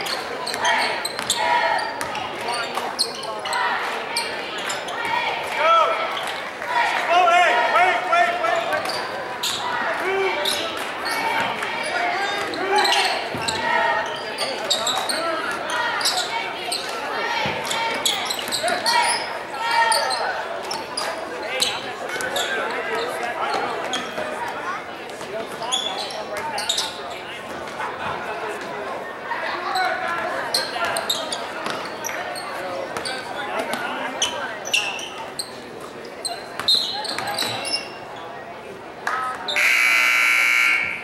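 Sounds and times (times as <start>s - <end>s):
spectators' voices echoing: 0.0s - 41.0s.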